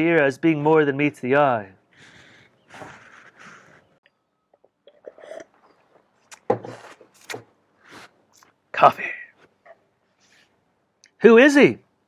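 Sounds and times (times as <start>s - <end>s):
person sipping and swallowing: 4.6s - 7.0s.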